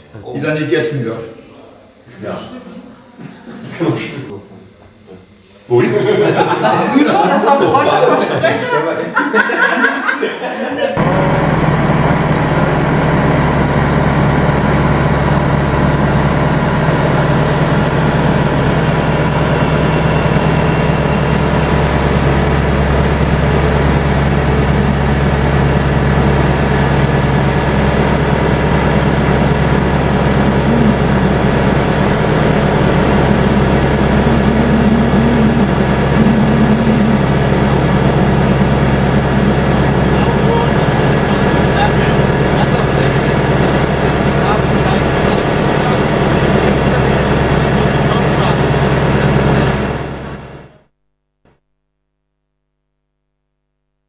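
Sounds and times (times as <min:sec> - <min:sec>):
propeller aircraft engine droning: 0:11.0 - 0:50.9.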